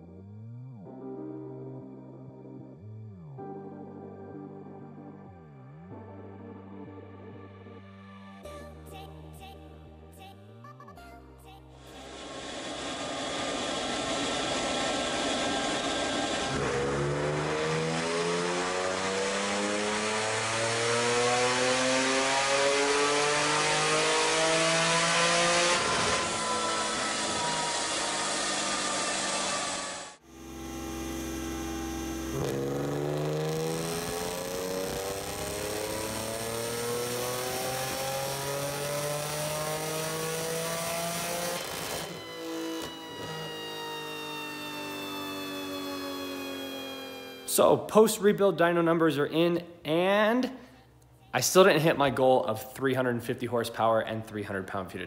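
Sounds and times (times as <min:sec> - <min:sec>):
car engine revving on dyno: 0:11.8 - 0:47.6.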